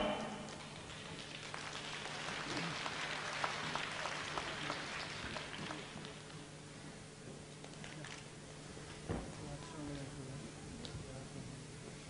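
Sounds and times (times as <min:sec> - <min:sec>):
low steady hum: 0:00.0 - 0:03.4
scattered clapping: 0:00.4 - 0:06.4.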